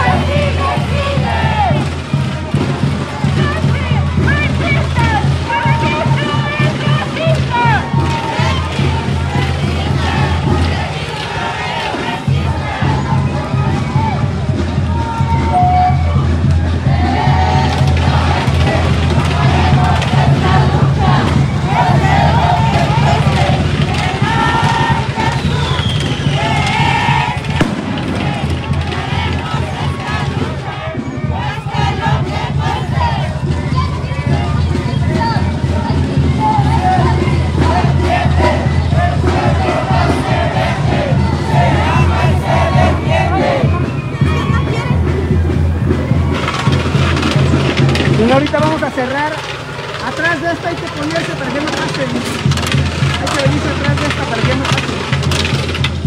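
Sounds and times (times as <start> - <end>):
marching crowd voices: 0.0 - 56.0
music: 0.0 - 56.0.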